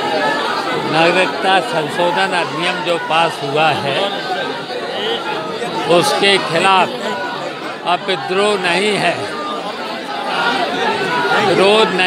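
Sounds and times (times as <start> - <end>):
murmur of chatter: 0.0 - 12.0.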